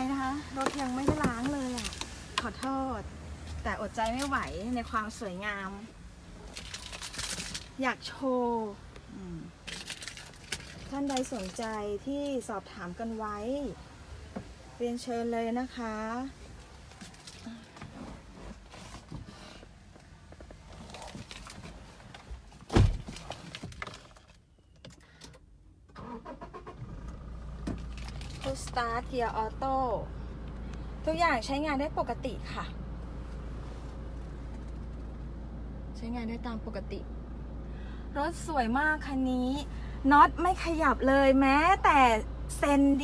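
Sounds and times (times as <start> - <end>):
woman speaking: 0.0 - 5.9, 7.8 - 9.6, 10.9 - 13.8, 14.8 - 16.4, 28.4 - 30.2, 31.0 - 32.8, 35.9 - 37.1, 38.2 - 43.0
diesel engine starting and idling: 25.8 - 43.0.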